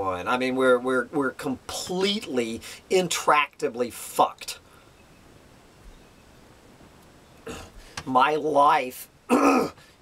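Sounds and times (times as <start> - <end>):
man talking: 0.0 - 4.6, 7.5 - 9.1
man's throat sound: 9.3 - 9.8.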